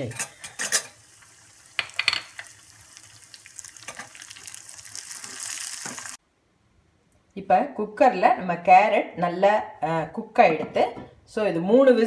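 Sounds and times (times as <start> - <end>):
nuts sizzling in a pan: 0.0 - 6.2.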